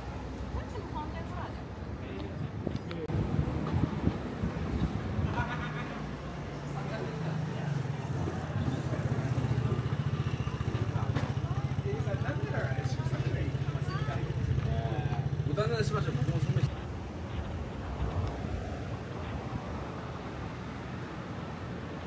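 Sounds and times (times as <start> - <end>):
passers-by talking: 0.0 - 18.1
vehicle engine idling: 6.6 - 17.4.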